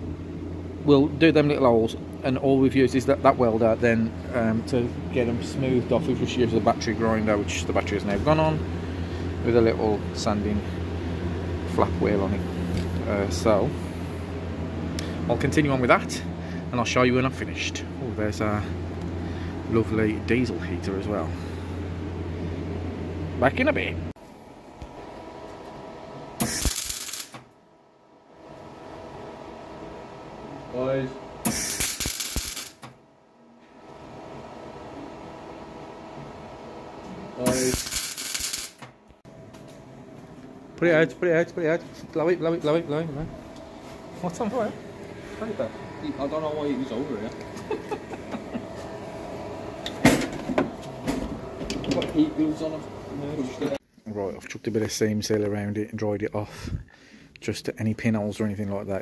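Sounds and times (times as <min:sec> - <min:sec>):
faint steady hum: 0:00.0 - 0:59.0
faint workshop background: 0:00.0 - 0:59.0
welding arc crackling: 0:26.4 - 0:27.5, 0:31.5 - 0:33.0, 0:37.4 - 0:38.9.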